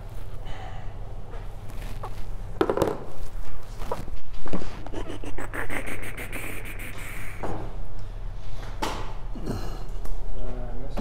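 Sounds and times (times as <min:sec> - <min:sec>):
low hum: 0:04.8 - 0:08.0.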